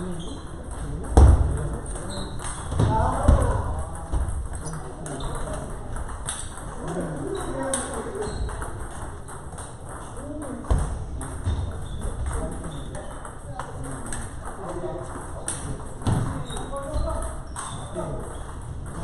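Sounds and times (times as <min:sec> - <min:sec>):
people talking: 0:00.0 - 0:09.3, 0:10.2 - 0:19.0
table tennis balls clicking: 0:00.0 - 0:19.0.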